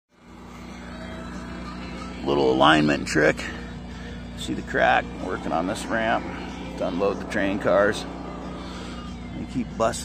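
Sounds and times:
engine humming steadily: 0.1s - 10.0s.

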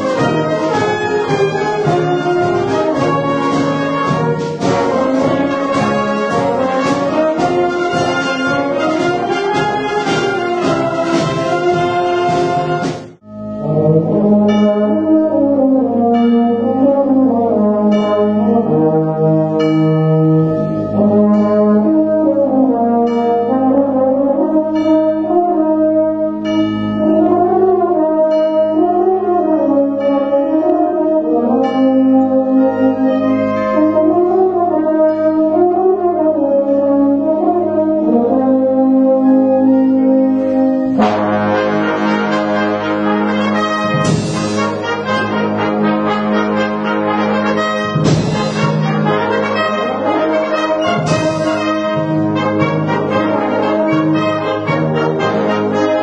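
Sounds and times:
wind band playing: 0.0s - 56.0s.

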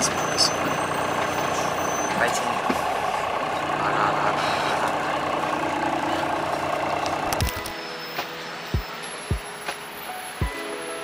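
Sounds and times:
bus engine idling: 0.0s - 11.0s
traffic noise: 0.0s - 11.0s
background music with soft beats: 7.4s - 11.0s.

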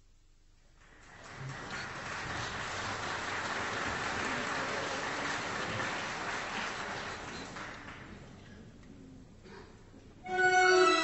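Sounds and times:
audience applause: 0.8s - 8.4s.

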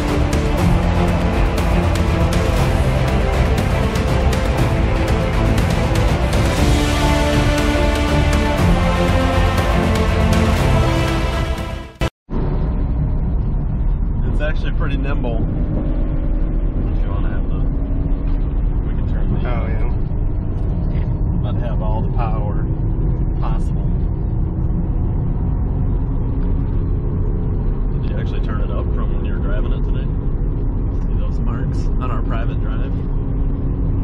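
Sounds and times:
car engine and road noise: 0.0s - 34.0s.

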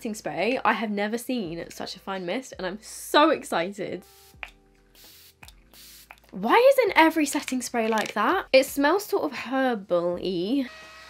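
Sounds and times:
pump spray hissing: 4.1s - 6.2s.

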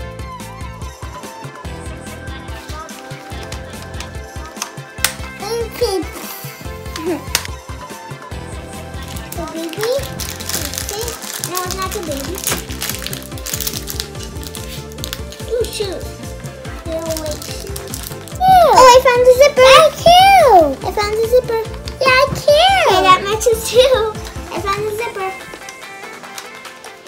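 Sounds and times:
background music with bass line: 0.0s - 27.0s
child's voice: 5.3s - 7.4s, 9.0s - 12.6s, 15.4s - 25.5s
plastic wrapper crinkling: 9.0s - 16.1s, 16.7s - 18.7s.

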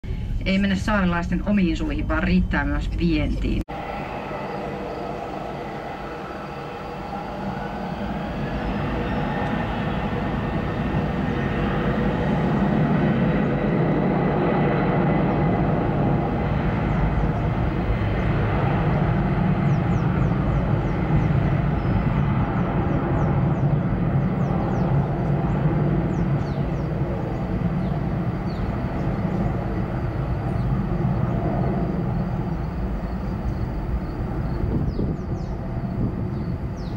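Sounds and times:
jet engines whine and rumble: 0.0s - 36.9s.

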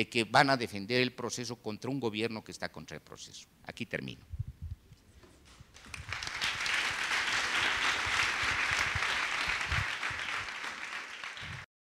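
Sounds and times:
audience applause: 5.8s - 11.7s.

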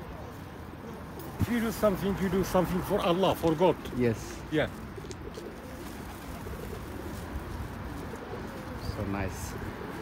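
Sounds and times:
pigeons cooing: 0.0s - 3.2s, 3.9s - 10.0s.

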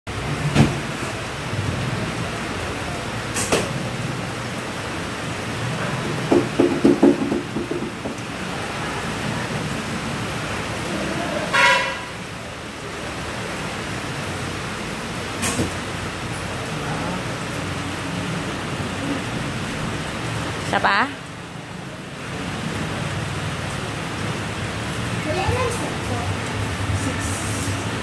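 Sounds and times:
run of low knocks: 6.2s - 8.5s
sharp knock: 6.3s - 8.2s
honk-like tone: 11.5s - 12.2s.

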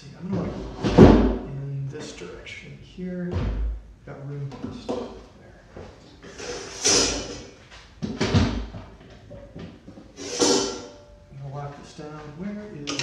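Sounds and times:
objects scraping and knocking: 5.8s - 8.4s, 9.0s - 11.0s.

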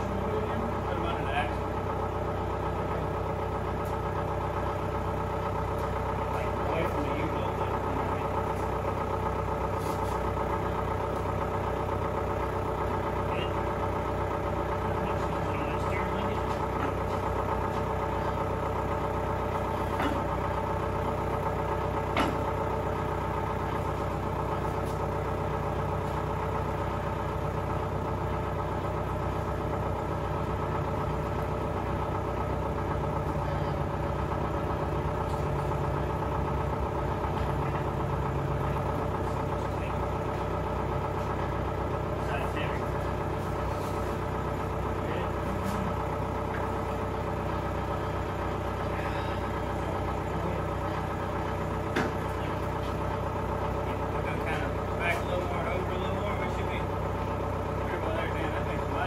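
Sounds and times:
clanking of work: 0.0s - 59.0s
engine idling: 0.0s - 59.0s.

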